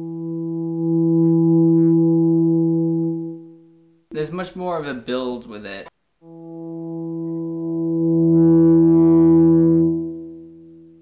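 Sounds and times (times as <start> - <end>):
electric guitar sustained note: 0.0 - 3.6, 6.2 - 11.0.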